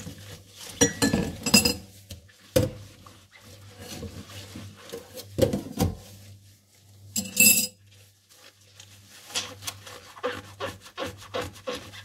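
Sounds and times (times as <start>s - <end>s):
glass bowl clinking against sink: 0.8s - 1.9s, 7.2s - 7.8s
rubber gloves rubbing: 7.8s - 12.0s.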